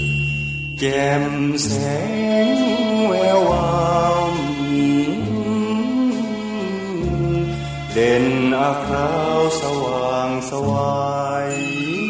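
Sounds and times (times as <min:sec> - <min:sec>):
instrumental accompaniment: 0:00.0 - 0:12.0
man singing with vibrato: 0:00.8 - 0:12.0.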